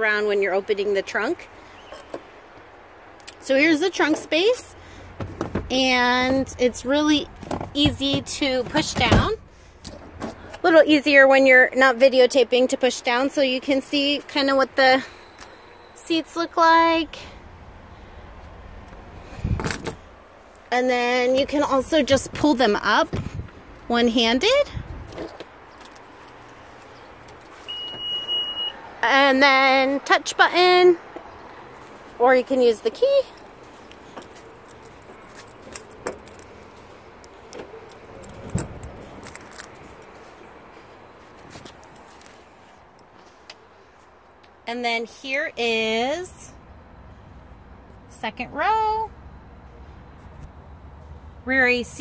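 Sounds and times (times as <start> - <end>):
seatback clunk and rattle: 5.0 - 10.6, 19.4 - 20.1, 21.2 - 23.6, 35.0 - 36.5, 37.4 - 39.4
car door unlatching and opening: 5.1 - 6.4, 7.4 - 10.4, 19.4 - 20.1
low handling rumble: 17.0 - 25.3
car keys jangling: 34.2 - 40.1.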